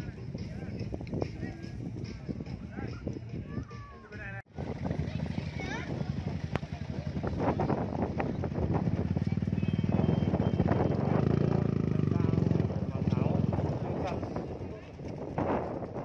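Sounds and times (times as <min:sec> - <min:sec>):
crowd chatter: 0:00.0 - 0:16.0
motorcycle engine running: 0:04.5 - 0:16.0.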